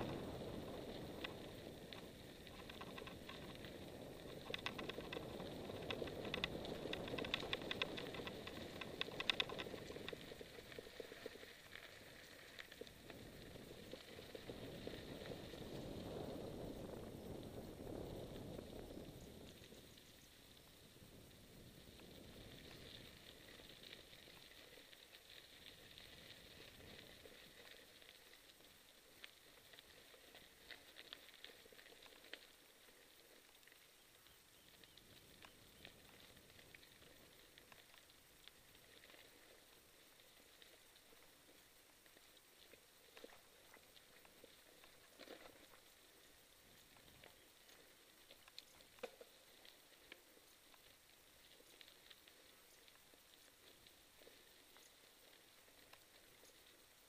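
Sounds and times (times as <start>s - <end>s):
bike tyres crunching over gravel: 0.0s - 20.0s, 21.8s - 33.3s
bike clicks and rattles: 2.5s - 10.2s.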